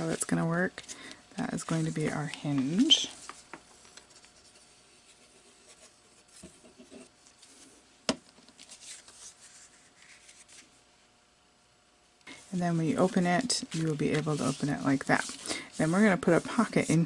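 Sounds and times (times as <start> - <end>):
hand smoothing paper: 12.3 - 17.0.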